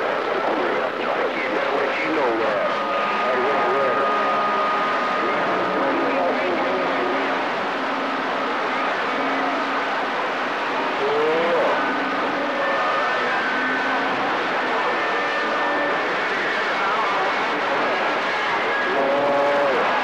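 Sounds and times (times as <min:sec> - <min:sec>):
faint garbled radio voices: 0:00.0 - 0:20.0
radio static hiss: 0:00.0 - 0:20.0.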